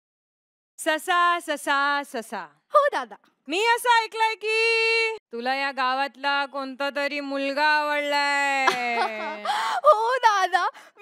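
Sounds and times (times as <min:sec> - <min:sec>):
woman gasping: 0:09.3 - 0:09.9.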